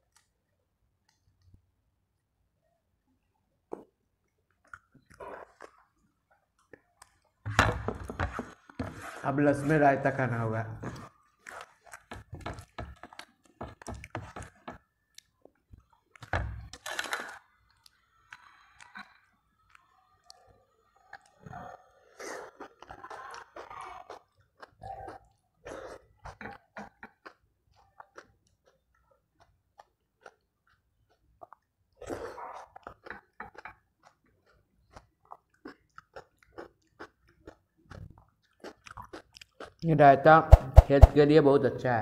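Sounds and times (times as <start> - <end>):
person chewing with wet mouth clicks: 3.7 - 7.4, 22.4 - 39.8.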